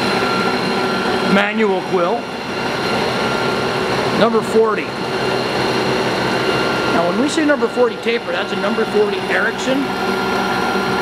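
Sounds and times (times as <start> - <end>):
milling machine humming: 0.0 - 11.0.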